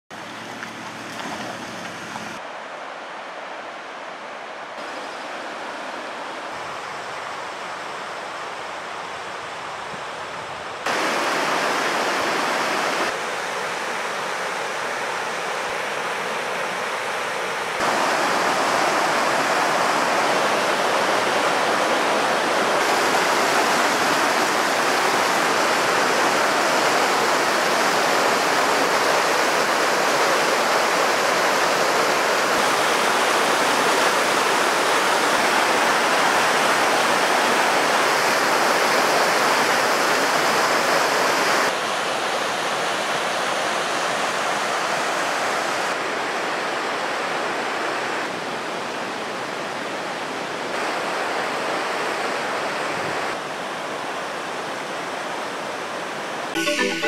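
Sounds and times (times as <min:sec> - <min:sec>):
river rushing over boulders: 0:00.1 - 0:56.6.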